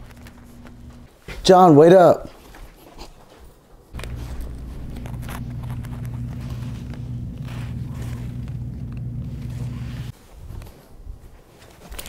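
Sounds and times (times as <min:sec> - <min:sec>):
steady low hum: 0:00.0 - 0:01.1, 0:04.0 - 0:10.1
cloth rustling: 0:02.4 - 0:12.0.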